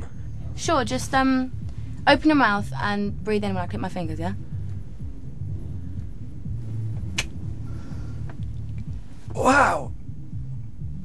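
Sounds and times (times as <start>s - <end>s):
low background hum: 0.0s - 11.0s
finger snap: 7.1s - 7.4s.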